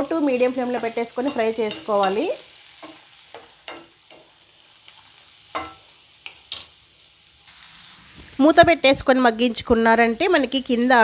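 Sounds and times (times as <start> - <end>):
faint sizzle: 0.0 - 11.0.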